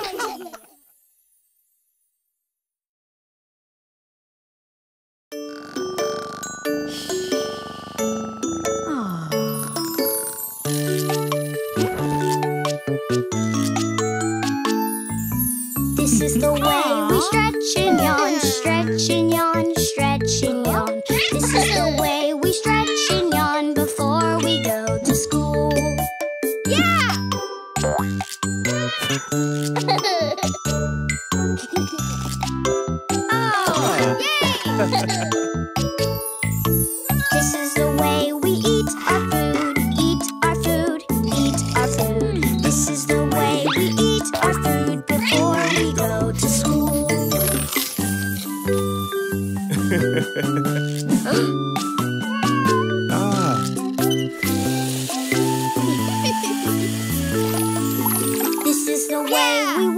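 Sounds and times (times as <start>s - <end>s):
children's song low chords: 15.9s - 26.0s, 33.2s - 35.5s, 37.2s - 47.4s
cartoon cat meowing: 21.1s - 23.2s, 24.4s - 24.8s, 28.7s - 29.3s, 33.5s - 35.0s, 45.2s - 46.0s, 52.2s - 53.0s
tap water running: 54.1s - 58.8s.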